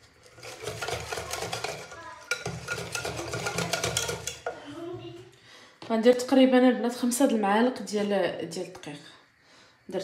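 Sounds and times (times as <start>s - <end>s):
wire whisk scraping a pot: 0.0s - 4.6s.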